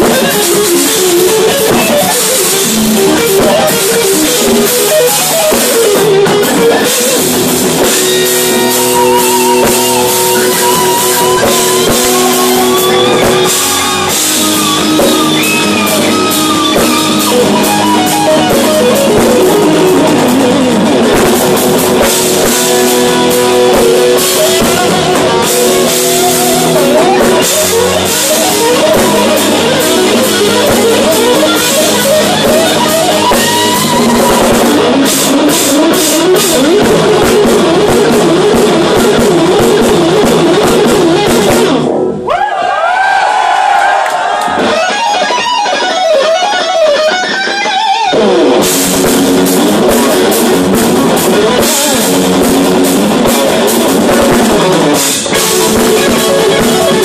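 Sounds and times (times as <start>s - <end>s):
electric guitar lead lines: 0.0s - 42.3s, 44.4s - 57.0s
bass guitar: 0.0s - 57.0s
drum kit: 0.0s - 57.0s.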